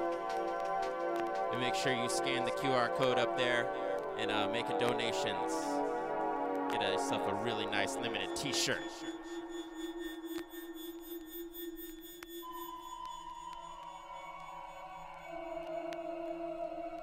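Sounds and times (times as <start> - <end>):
held low electronic tone: 1.4 - 16.9
higher electronic tone: 6.6 - 16.1.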